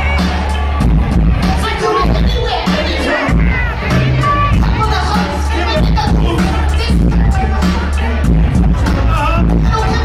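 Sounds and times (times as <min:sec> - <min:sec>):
crowd shouting and cheering: 0:00.0 - 0:10.0
hip-hop beat with heavy bass: 0:00.0 - 0:10.0
rap vocals: 0:00.0 - 0:10.0.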